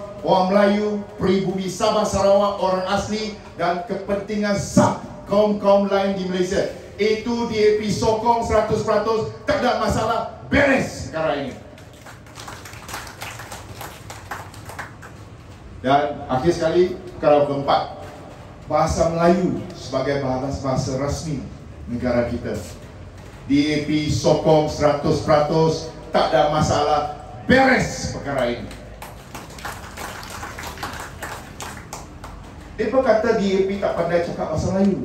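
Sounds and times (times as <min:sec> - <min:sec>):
audience clapping: 0:11.8 - 0:15.3, 0:28.4 - 0:32.8.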